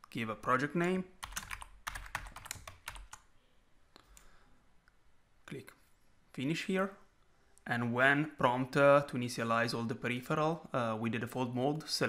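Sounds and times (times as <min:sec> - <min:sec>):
rapid keyboard typing: 0:01.2 - 0:03.2.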